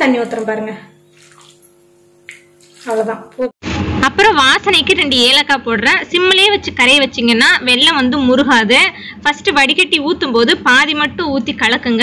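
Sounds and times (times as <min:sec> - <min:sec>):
water trickling and splashing: 0:00.0 - 0:03.6.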